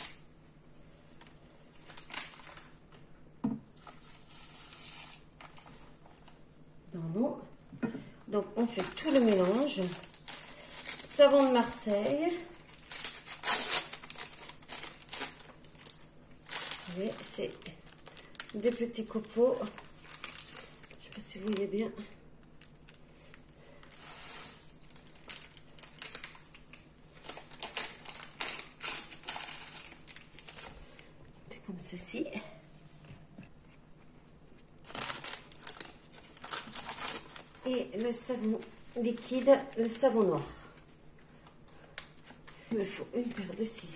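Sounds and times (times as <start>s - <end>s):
paper packet crinkling: 1.2s - 2.8s, 8.6s - 21.8s, 22.4s - 31.1s, 34.8s - 40.1s.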